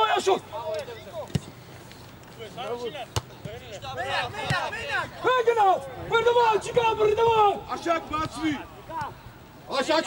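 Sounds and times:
players shouting: 0:03.6 - 0:10.0.

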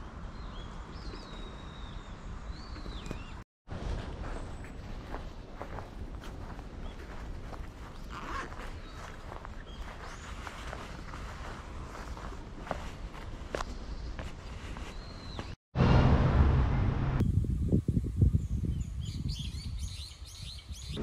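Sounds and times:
outdoor background noise: 0:00.0 - 0:19.0
footsteps on paved path: 0:02.5 - 0:15.6.

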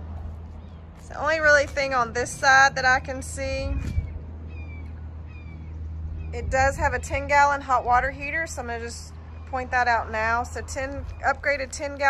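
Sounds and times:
steady low hum: 0:00.0 - 0:12.0
bird calling: 0:03.7 - 0:07.8.

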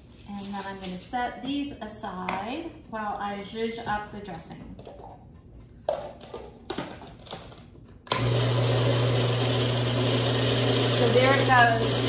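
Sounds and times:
food processor motor humming: 0:08.1 - 0:12.0.

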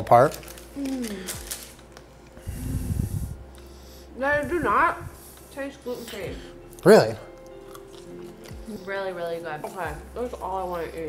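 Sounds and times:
breath puffing through nose: 0:02.4 - 0:06.6.

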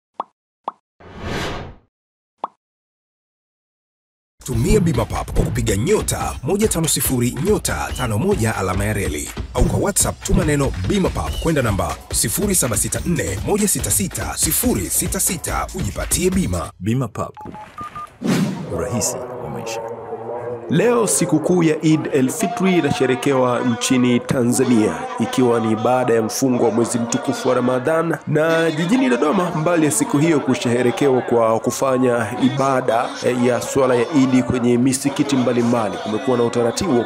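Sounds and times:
short rushing whoosh: 0:01.0 - 0:01.8
person speaking: 0:18.6 - 0:20.0.

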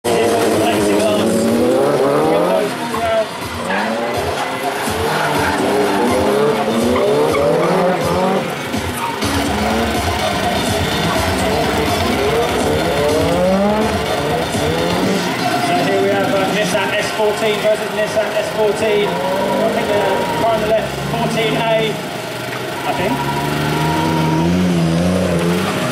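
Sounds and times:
drift car engines revving: 0:00.0 - 0:25.9
tyre squeal: 0:05.1 - 0:12.6, 0:22.9 - 0:25.9.

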